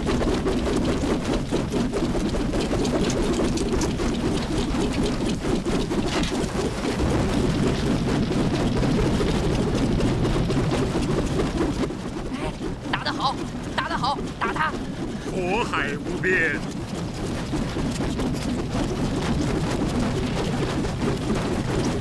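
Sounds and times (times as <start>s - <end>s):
roaring fire with crackles: 0.0s - 22.0s.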